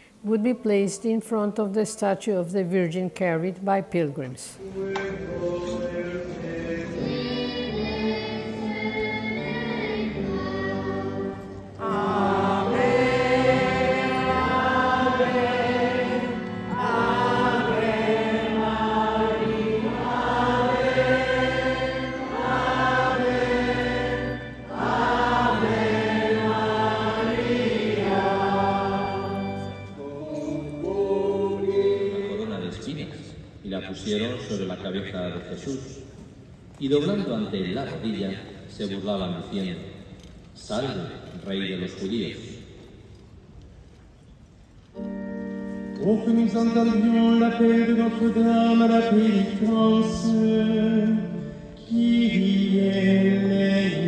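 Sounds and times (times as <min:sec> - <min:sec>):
choir singing a hymn: 0:04.6 - 0:32.9, 0:46.0 - 0:54.0.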